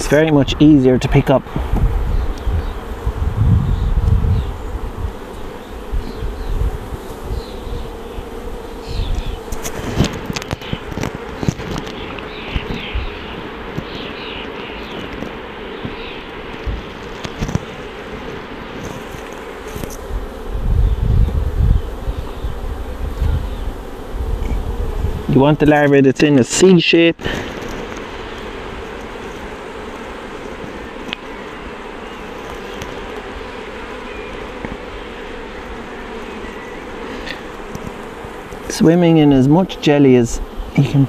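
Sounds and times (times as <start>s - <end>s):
honeybees buzzing: 0.0s - 41.0s.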